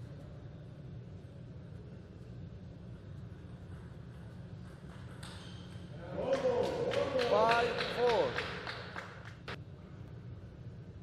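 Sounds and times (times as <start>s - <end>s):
table tennis ball hits: 3.7s - 8.6s.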